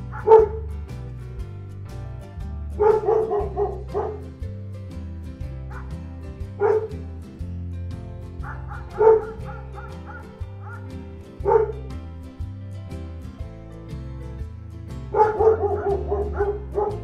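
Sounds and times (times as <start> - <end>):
dog barking: 0.0 - 0.7, 2.8 - 4.3, 5.7 - 6.0, 6.6 - 7.0, 8.4 - 11.8, 15.1 - 17.0
background music with steady beat: 0.0 - 17.0.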